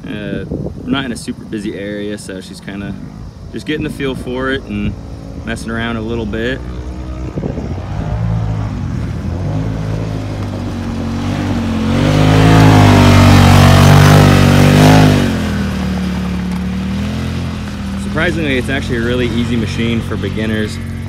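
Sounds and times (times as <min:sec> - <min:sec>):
off-road vehicle engine revving: 0:00.0 - 0:21.0.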